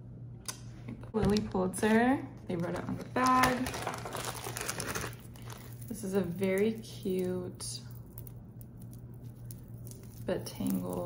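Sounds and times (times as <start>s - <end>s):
plastic bag crinkling: 2.5s - 11.0s.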